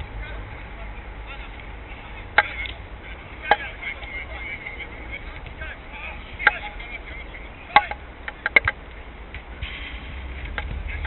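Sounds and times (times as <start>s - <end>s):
players calling out: 0.0s - 8.9s.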